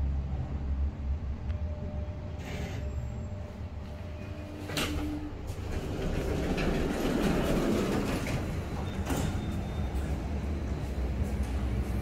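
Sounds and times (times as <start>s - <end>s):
lift doors sliding open: 3.9s - 12.0s.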